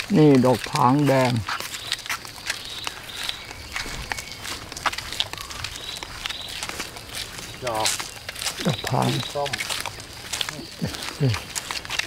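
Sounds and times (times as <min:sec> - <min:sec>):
footsteps on concrete: 0:00.0 - 0:12.0
bird chirps: 0:00.2 - 0:11.7.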